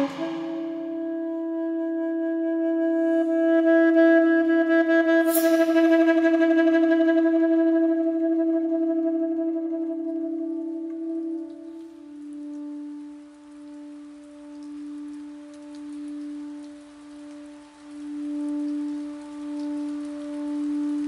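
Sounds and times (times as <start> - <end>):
saxophone holding long note: 0.0 - 11.8
brief high hiss: 5.2 - 6.5.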